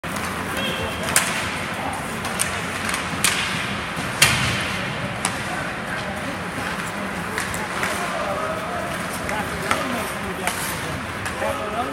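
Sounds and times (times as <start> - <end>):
distant voices: 0.0 - 11.9
hockey sticks and puck clacking: 0.0 - 11.9.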